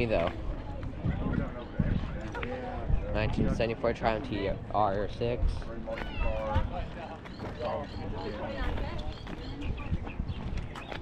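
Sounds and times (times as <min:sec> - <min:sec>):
people talking: 0:00.0 - 0:11.0
footsteps on gravel: 0:05.8 - 0:11.0.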